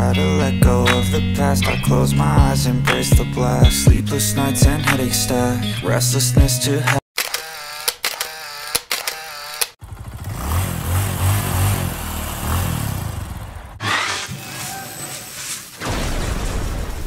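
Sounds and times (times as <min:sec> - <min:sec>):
regular clicks: 0:07.2 - 0:09.8.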